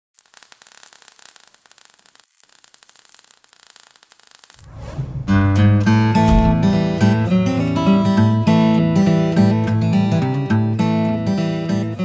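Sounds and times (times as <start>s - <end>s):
crackling static: 0.2s - 4.7s.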